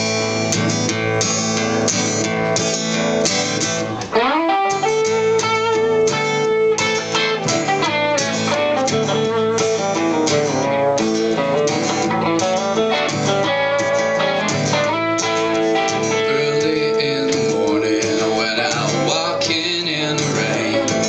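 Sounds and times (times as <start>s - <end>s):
acoustic guitar strumming chords: 0.0s - 21.0s
electric guitar lead notes: 0.0s - 21.0s.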